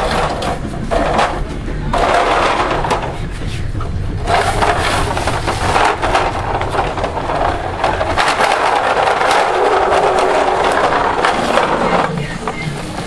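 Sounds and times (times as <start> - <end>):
toy car rolling on tile floor: 0.0 - 3.2, 4.2 - 13.0
low rumble: 0.0 - 13.0.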